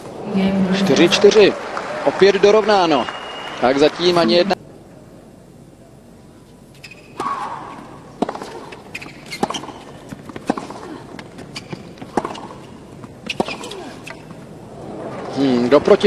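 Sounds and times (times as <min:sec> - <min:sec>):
tennis ball hit by rackets: 0:08.2 - 0:14.2.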